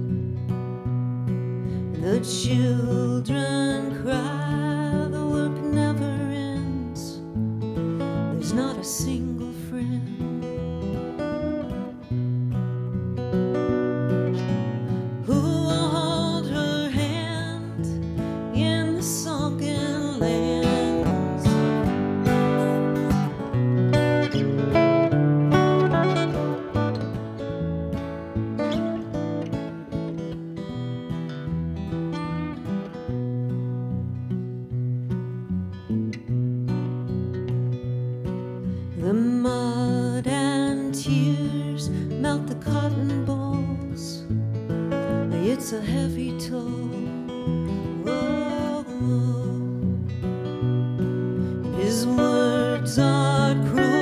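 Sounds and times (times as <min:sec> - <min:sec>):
acoustic guitars playing: 0:00.0 - 0:54.0.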